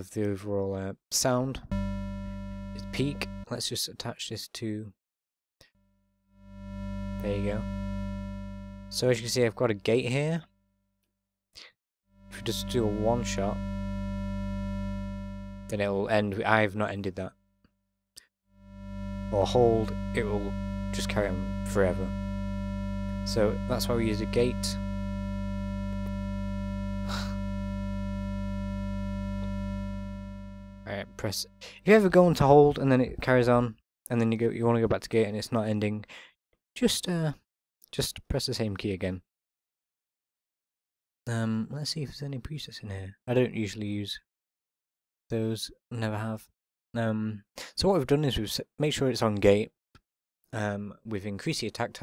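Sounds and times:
synth pad chord: 0:06.6 - 0:09.0, 0:12.3 - 0:15.8, 0:18.7 - 0:31.4.

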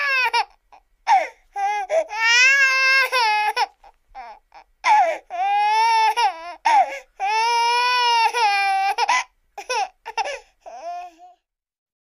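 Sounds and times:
baby crying: 0:00.0 - 0:11.4.

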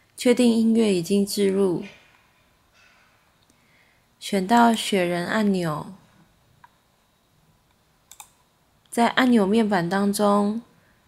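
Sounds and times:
computer mouse clicks: 0:06.6 - 0:06.8, 0:07.7 - 0:09.0.

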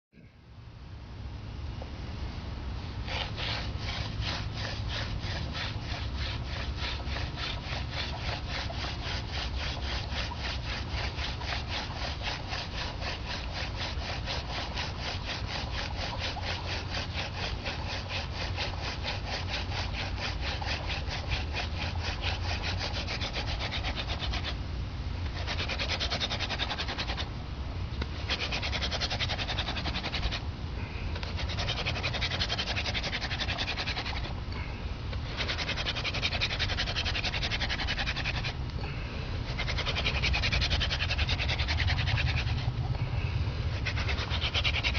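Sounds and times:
wooden spindle rasping in hearth: 0:02.8 - 0:24.6, 0:25.2 - 0:27.3, 0:28.0 - 0:43.0, 0:43.6 - 0:44.9.

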